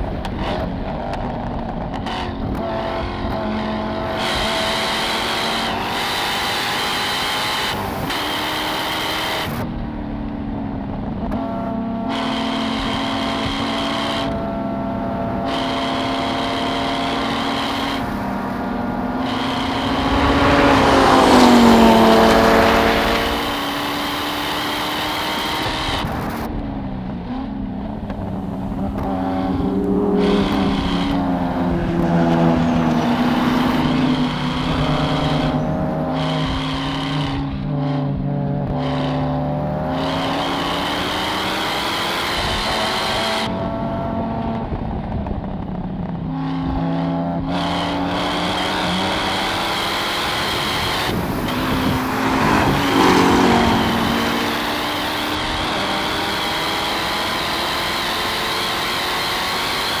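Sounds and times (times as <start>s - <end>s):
sports car engines at full throttle: 0.0s - 60.0s.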